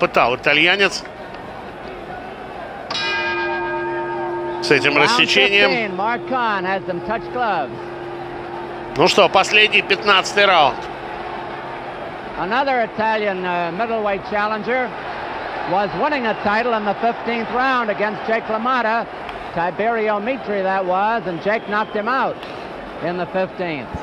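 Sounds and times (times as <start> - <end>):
man talking: 0.0 - 1.0, 4.6 - 7.8, 9.0 - 10.8
murmur of arena crowd: 0.0 - 24.0.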